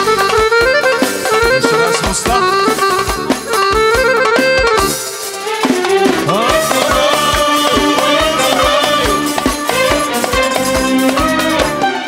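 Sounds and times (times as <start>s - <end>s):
hand drum beat: 0.0s - 11.8s
drum kit beat: 0.0s - 12.0s
electronic keyboards: 0.0s - 12.0s
kanun melody: 0.0s - 12.0s.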